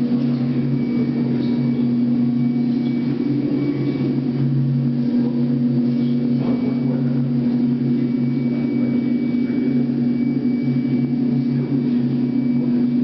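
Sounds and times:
low droning music: 0.0 - 13.0
thin high whine: 0.0 - 13.0.

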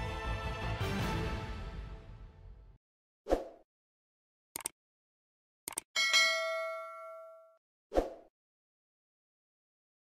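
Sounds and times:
notification bell ding: 6.0 - 7.6.

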